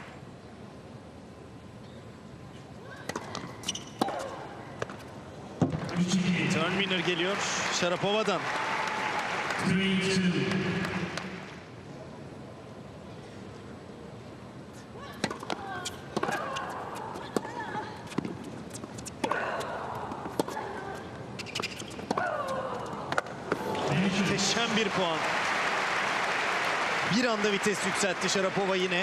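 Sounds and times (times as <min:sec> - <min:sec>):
crowd applause: 0:05.9 - 0:11.6, 0:23.6 - 0:29.0
tennis ball bouncing: 0:15.2 - 0:19.4, 0:20.0 - 0:20.6.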